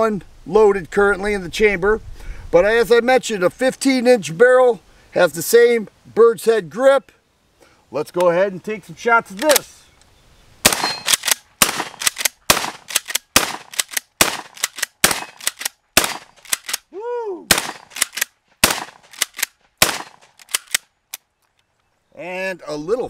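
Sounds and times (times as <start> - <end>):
shotgun pump racking: 9.3 - 9.7, 11.0 - 15.8, 16.4 - 16.8, 20.3 - 21.3
shotgun firing: 10.6 - 16.8, 17.5 - 20.8.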